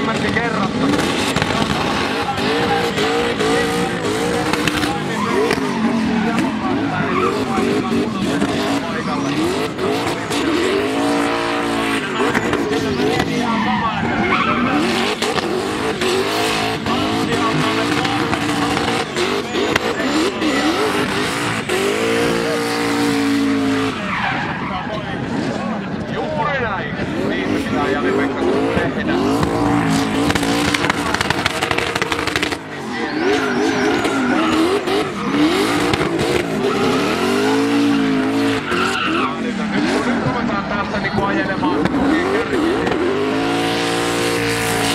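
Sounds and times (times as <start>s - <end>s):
car engine revving hard: 0.0s - 44.9s
tyres spinning and squealing: 0.0s - 44.9s.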